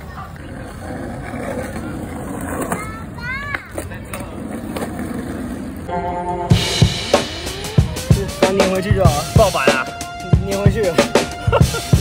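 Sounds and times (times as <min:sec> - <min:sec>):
short rising pitched sound: 0:05.9 - 0:08.7.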